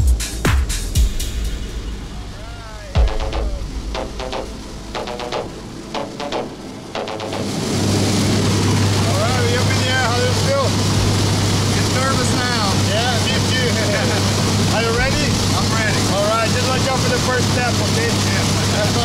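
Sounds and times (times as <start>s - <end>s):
plane engine and propeller drone: 1.8s - 19.0s.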